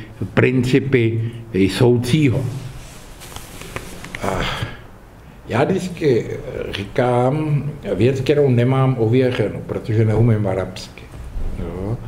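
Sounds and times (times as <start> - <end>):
man sniffing: 4.1 - 4.9.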